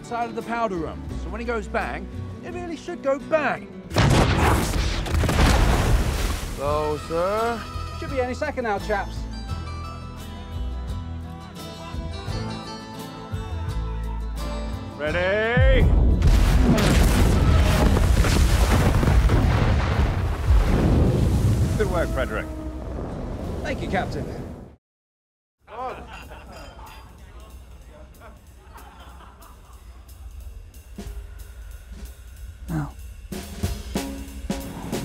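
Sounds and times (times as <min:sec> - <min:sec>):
gun firing boom with rumble: 0:04.0 - 0:06.2, 0:15.6 - 0:21.8.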